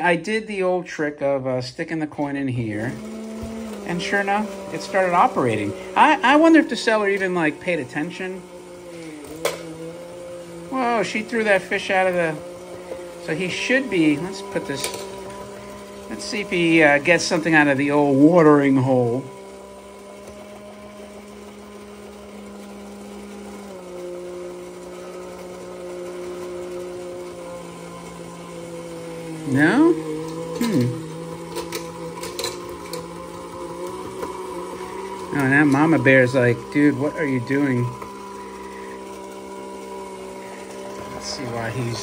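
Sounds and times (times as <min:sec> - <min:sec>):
toy electric motor humming: 0:10.5 - 0:42.0.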